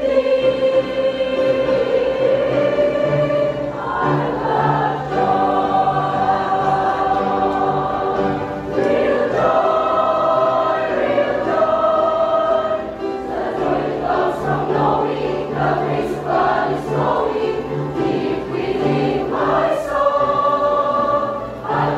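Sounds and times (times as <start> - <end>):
church choir singing gospel: 0.0 - 21.9.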